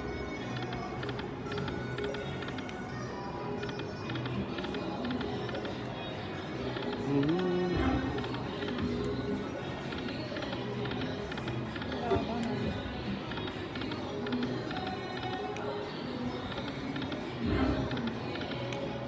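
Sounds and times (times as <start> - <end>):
murmur of voices: 0.1 - 19.0.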